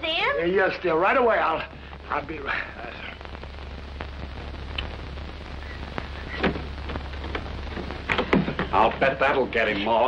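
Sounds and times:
film hiss and crackle: 0.0s - 10.0s
low hum: 0.7s - 9.6s
clicks: 4.0s - 5.1s.

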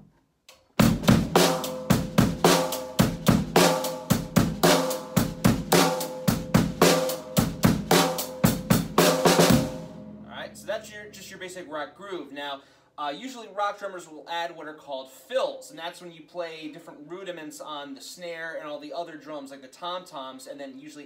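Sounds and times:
drum kit rock groove: 0.8s - 12.1s.

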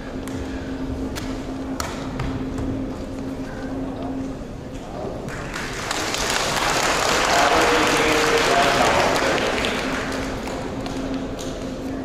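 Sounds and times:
audience applauding: 5.3s - 11.7s.

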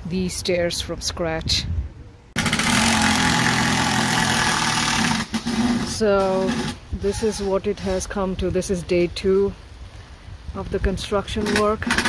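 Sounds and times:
power tool motor grinding: 2.4s - 6.8s.

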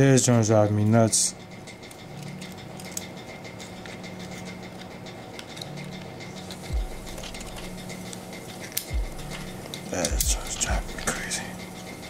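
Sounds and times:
steady low hum: 0.0s - 12.0s
clicks and scratches of key shell: 1.6s - 12.0s.

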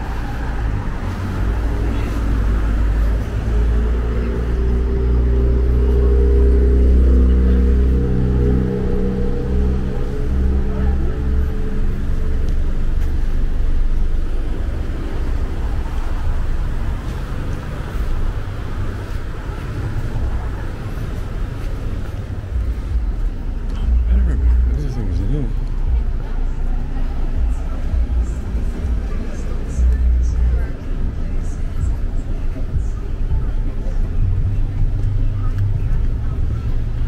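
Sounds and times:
car engines at low speed: 0.0s - 37.0s
indistinct voices: 0.0s - 37.0s.

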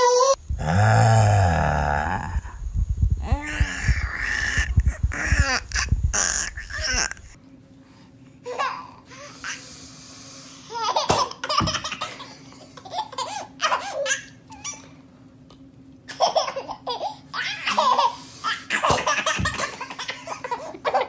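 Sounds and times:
soft low thumps: 0.4s - 7.4s
toddler laughing: 3.3s - 7.4s, 10.7s - 14.8s, 16.1s - 21.0s.

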